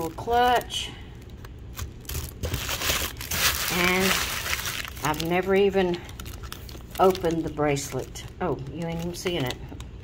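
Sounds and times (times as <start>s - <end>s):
tissue paper rustling: 2.0s - 8.1s.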